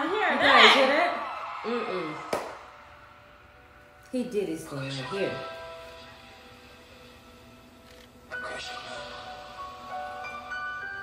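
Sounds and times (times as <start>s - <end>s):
music: 0.0s - 11.0s.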